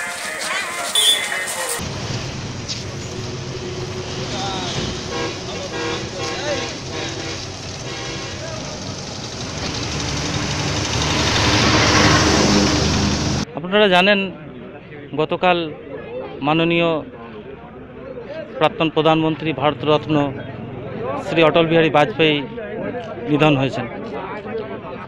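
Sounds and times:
road traffic: 0.0 - 13.5, 17.3 - 24.1.

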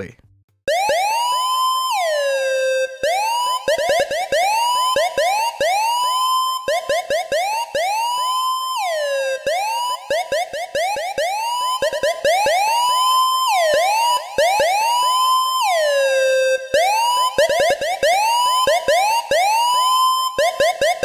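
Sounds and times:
dub siren synth swooping: 0.7 - 21.0.

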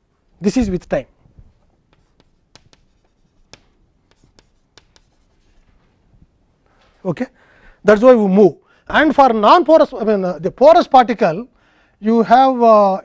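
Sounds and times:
chalk writing on chalkboard: 1.8 - 5.9.

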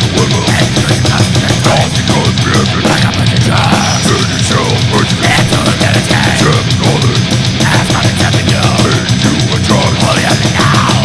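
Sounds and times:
distorted guitars: 0.0 - 11.0
rapid pounding drums: 0.0 - 11.0.

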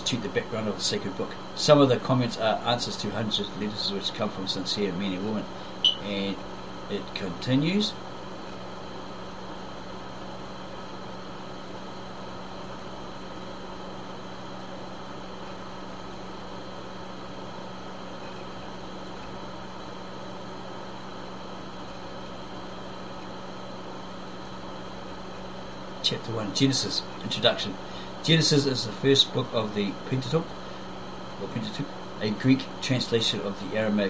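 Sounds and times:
room hum and hiss: 0.0 - 34.0
held low tone: 5.8 - 6.1.

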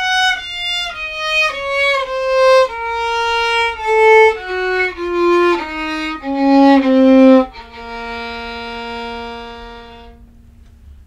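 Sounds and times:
violin bowed note: 0.0 - 10.5.

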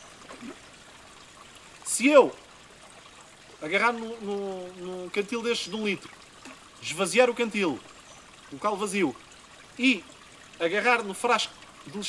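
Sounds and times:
stream trickling over rocks: 0.0 - 12.0.

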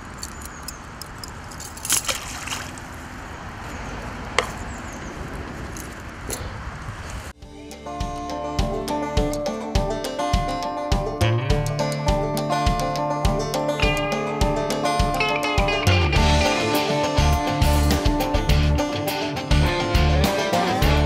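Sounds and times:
metal chain clicks: 0.0 - 2.2
acoustic guitar music with beat: 7.4 - 21.0.

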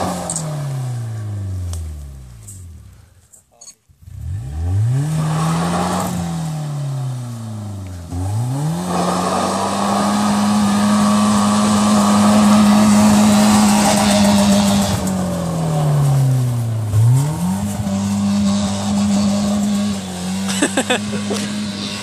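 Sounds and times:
car engine revving: 0.0 - 3.0, 4.0 - 22.0
gravel hissing under tyres: 0.0 - 3.4, 5.1 - 22.0.

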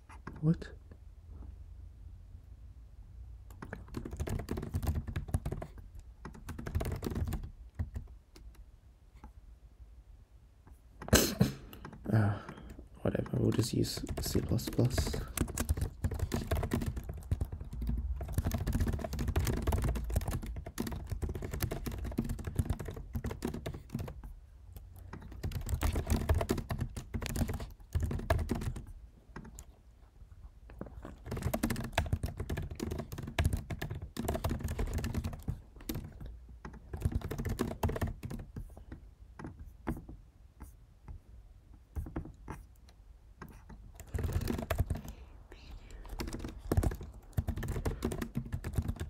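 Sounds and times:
fast typing on keyboard: 3.5 - 8.6, 11.7 - 29.8, 30.8 - 40.2, 41.9 - 42.6, 43.5 - 49.0.

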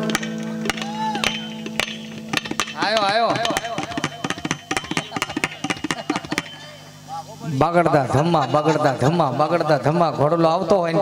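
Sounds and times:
tabla strokes: 0.0 - 6.9
short wavering vocal cry: 0.8 - 1.6.

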